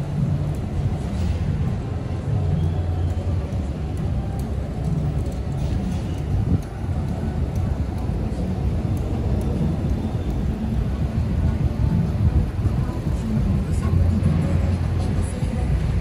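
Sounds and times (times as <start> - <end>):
street traffic rumble: 0.0 - 16.0.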